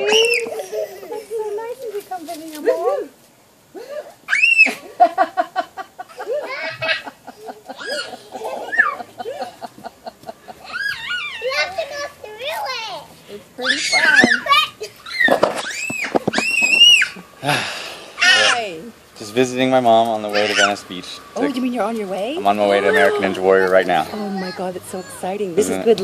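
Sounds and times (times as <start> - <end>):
children squealing and laughing: 0.0 - 1.9, 2.6 - 18.9, 20.2 - 21.6, 22.4 - 25.6.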